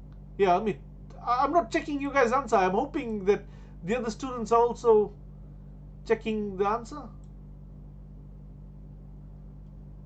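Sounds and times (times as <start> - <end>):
low hum: 0.0 - 10.0.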